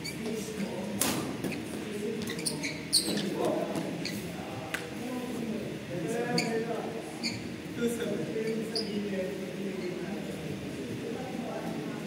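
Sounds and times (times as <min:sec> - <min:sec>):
shoes squeaking on court: 0:00.0 - 0:04.4, 0:06.3 - 0:07.6, 0:08.4 - 0:09.0
murmur of voices: 0:00.0 - 0:12.0.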